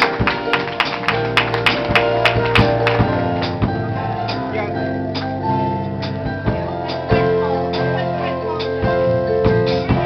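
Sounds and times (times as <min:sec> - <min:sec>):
band playing held chords: 0:00.0 - 0:10.0.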